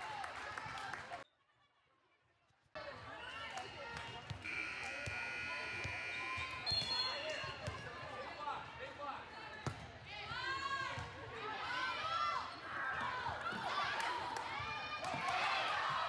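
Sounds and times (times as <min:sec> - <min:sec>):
whistle blast: 0:04.5 - 0:07.3.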